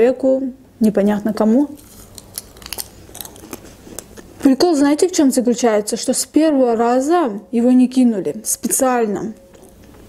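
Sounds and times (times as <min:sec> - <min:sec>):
chewing pizza crust: 0:01.7 - 0:04.5, 0:09.4 - 0:10.0.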